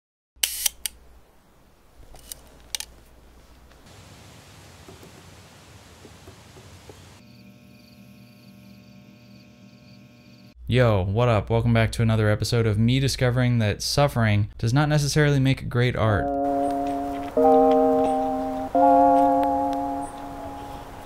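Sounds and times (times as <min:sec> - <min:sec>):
camera mechanism clicks: 0:00.4 - 0:01.0, 0:02.2 - 0:02.9
faint steady hiss: 0:00.5 - 0:07.2.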